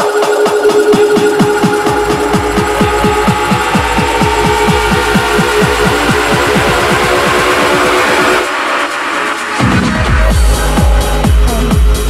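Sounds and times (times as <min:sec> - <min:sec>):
steady synth layer: 0:00.0 - 0:12.0
deep techno bass hits: 0:00.7 - 0:12.0.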